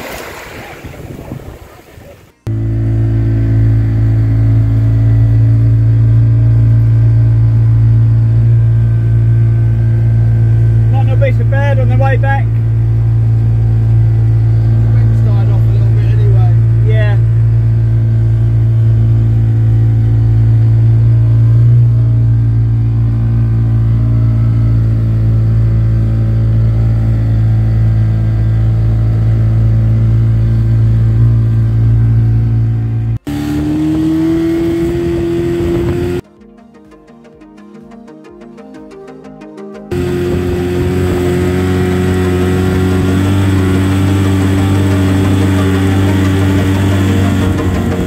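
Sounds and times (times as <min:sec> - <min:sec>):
water and wind rushing: 0:00.0 - 0:02.4
outboard motor running: 0:00.0 - 0:36.2, 0:39.9 - 0:48.0.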